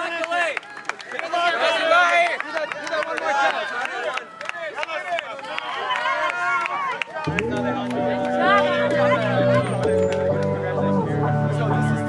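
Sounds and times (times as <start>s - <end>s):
people talking at once: 1.2s - 12.0s.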